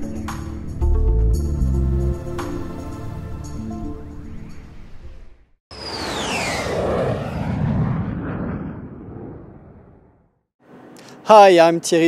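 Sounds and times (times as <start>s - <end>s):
rushing noise: 5.7s - 9.3s
jet whine falling in pitch: 5.7s - 10.2s
low rumble: 5.8s - 10.4s.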